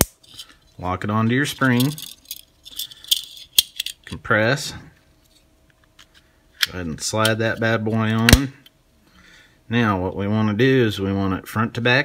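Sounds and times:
magazine parts clicking and rattling: 0:01.6 - 0:04.2.

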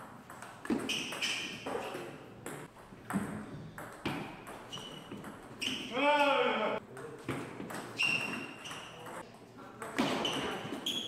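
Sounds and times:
table tennis ball pings: 0:07.3 - 0:09.2.

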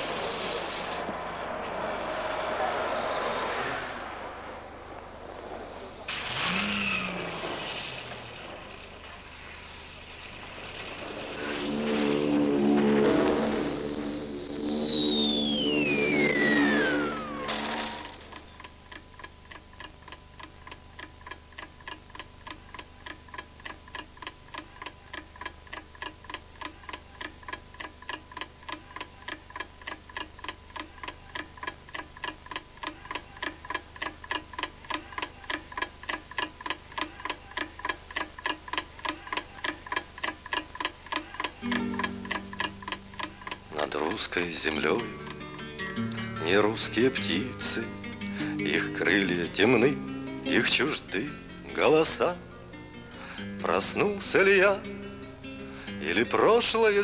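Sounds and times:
held low chord: 0:10.0 - 0:18.7, 0:41.6 - 0:56.5
whistle falling in pitch: 0:11.3 - 0:18.6
clock ticking: 0:14.6 - 0:57.0.

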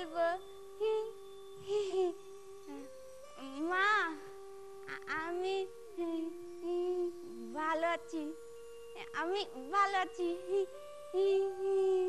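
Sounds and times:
woman singing wordless phrases: 0:00.0 - 0:04.3, 0:04.9 - 0:12.0
faint steady held tones: 0:00.0 - 0:12.0.

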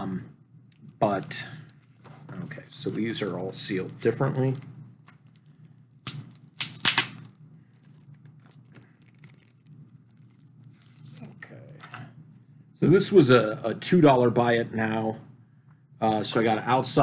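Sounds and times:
faint rustling of plastic bag: 0:00.8 - 0:06.0, 0:07.5 - 0:11.8
packaging being torn open: 0:04.3 - 0:11.4.

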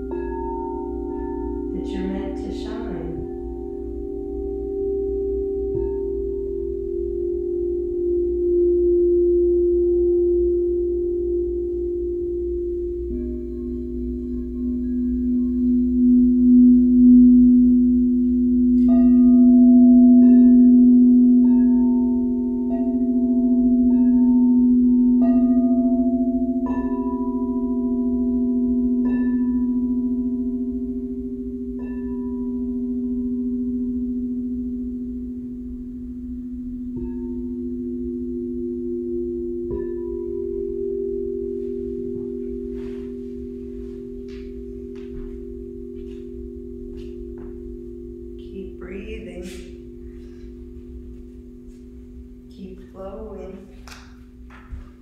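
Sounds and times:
singing bowls ringing: 0:00.0 - 0:55.0
struck bell-like notes: 0:00.0 - 0:55.0.

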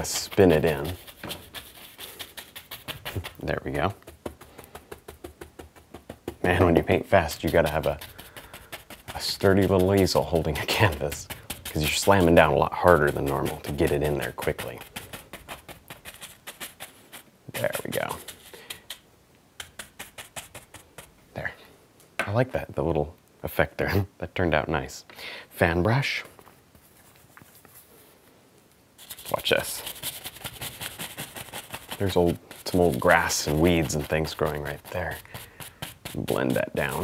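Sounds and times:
brush tapping on canvas: 0:00.0 - 0:19.0
paintbrush tapping on canvas: 0:02.7 - 0:07.0.

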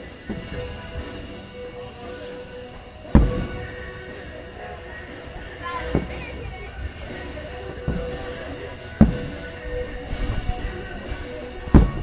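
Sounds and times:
firework shells bursting: 0:00.0 - 0:04.2.

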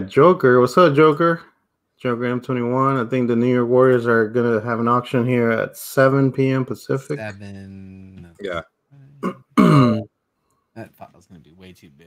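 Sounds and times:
man speaking: 0:00.0 - 0:10.1, 0:10.8 - 0:12.0
man clearing his throat: 0:09.2 - 0:10.1.

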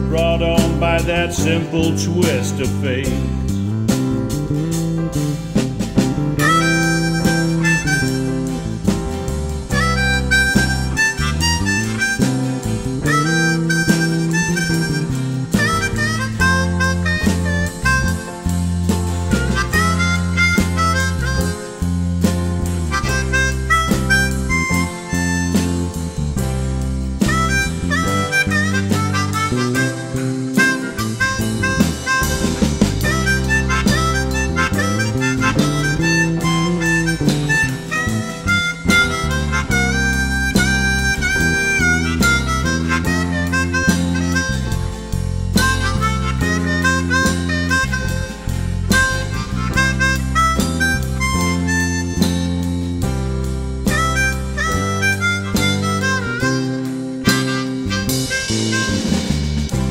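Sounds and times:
acoustic guitar: 0:00.0 - 0:59.9
bass guitar: 0:00.0 - 0:59.9
harmonica melody: 0:00.0 - 0:59.9.

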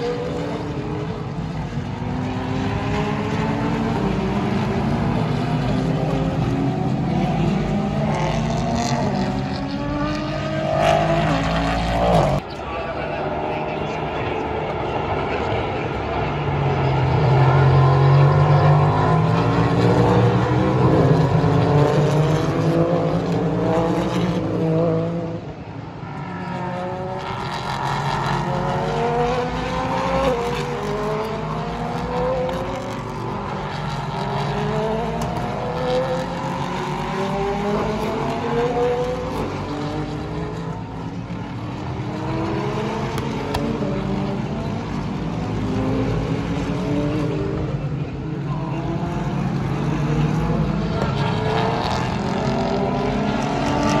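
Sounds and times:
race car engines at full throttle: 0:00.0 - 0:54.0.

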